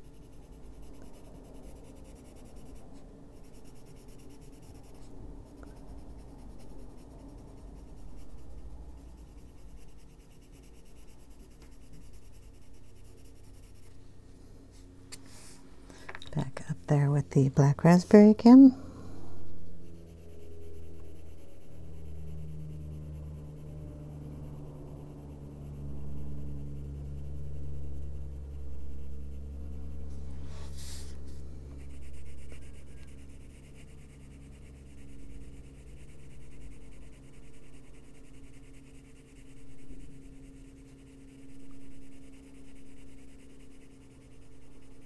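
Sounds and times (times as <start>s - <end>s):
pencil shading on paper: 0.0s - 14.0s, 19.5s - 45.0s
steady low hum: 0.0s - 45.0s.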